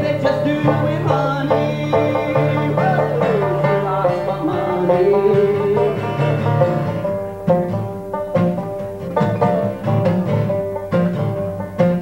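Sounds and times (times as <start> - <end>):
acoustic guitar: 0.0 - 12.0
banjo: 0.0 - 12.0.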